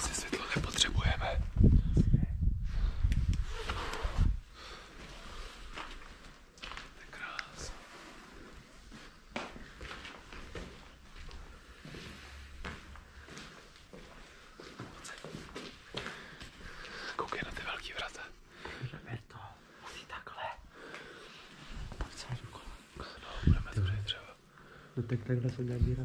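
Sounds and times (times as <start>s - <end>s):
people whispering: 0.0s - 2.4s, 6.9s - 8.5s, 14.6s - 16.2s, 16.8s - 21.2s, 21.9s - 26.0s.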